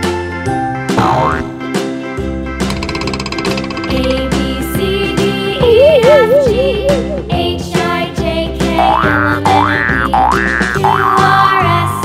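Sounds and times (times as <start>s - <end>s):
children's music with bass line: 0.6s - 1.6s, 3.7s - 12.0s
slide-whistle effect: 5.6s - 7.4s.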